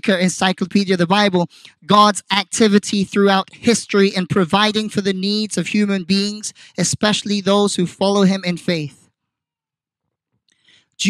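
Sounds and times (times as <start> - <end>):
faint breath into microphone: 6.5 - 6.8, 10.5 - 11.0.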